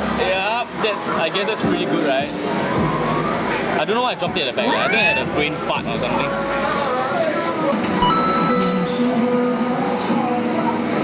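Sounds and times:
arcade noise: 0:07.7 - 0:09.2
electronic arcade machine music: 0:08.0 - 0:09.3.

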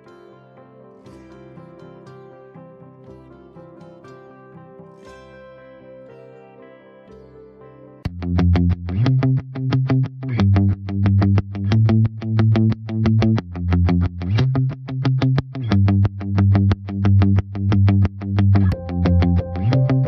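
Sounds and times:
distorted electric guitar chords: 0:00.9 - 0:20.0
low bass line: 0:08.1 - 0:20.0.

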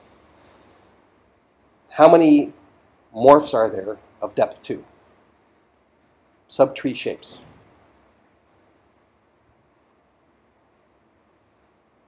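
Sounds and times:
man talking: 0:01.9 - 0:04.9, 0:06.5 - 0:07.5.

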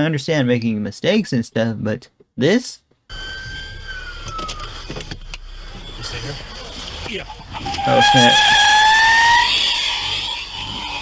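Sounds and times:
faint high whine: 0:03.1 - 0:07.8
low engine rumble: 0:03.1 - 0:08.3.

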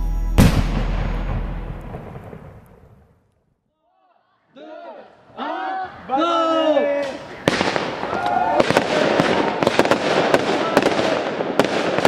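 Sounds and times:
deep boom sound effect: 0:00.0 - 0:03.2.

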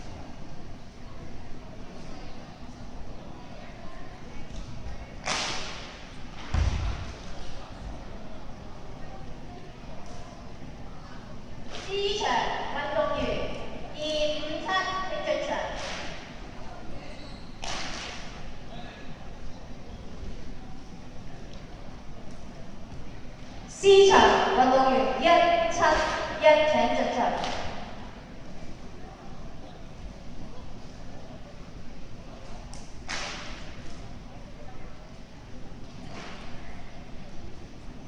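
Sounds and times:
murmur of large hall: 0:00.0 - 0:38.0
faint background voices: 0:15.7 - 0:23.7.

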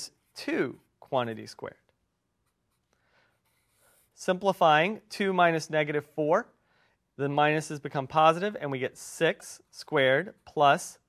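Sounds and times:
marker scratching on paper: 0:02.4 - 0:04.2.

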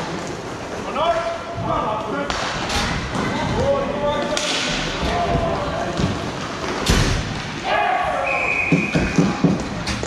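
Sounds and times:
hockey stick slapping puck: 0:02.3 - 0:03.3, 0:04.3 - 0:04.8.

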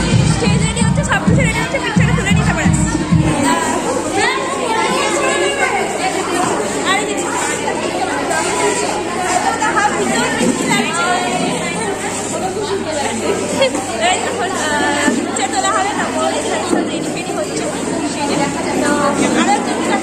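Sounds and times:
overlapping chatter in echoing hall: 0:00.0 - 0:20.0.

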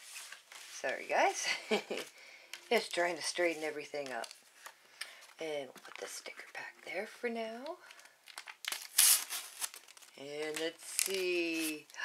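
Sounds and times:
wrapper crinkling: 0:01.8 - 0:06.6, 0:07.8 - 0:12.0
sticker packet tearing open: 0:08.3 - 0:11.8.

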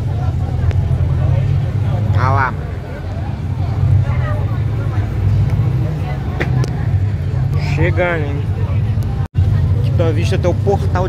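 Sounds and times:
bus engine droning: 0:00.0 - 0:11.0.

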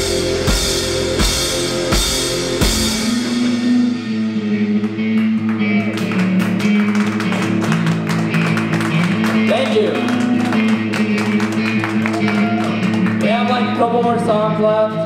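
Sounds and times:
electric guitar ringing: 0:00.0 - 0:14.3
electric bass through amplifier: 0:00.0 - 0:15.0.

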